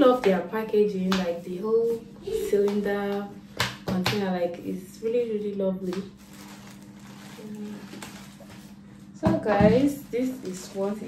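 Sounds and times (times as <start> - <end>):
steady low hum: 0.0 - 11.0
wig rustling out of container: 6.1 - 8.8.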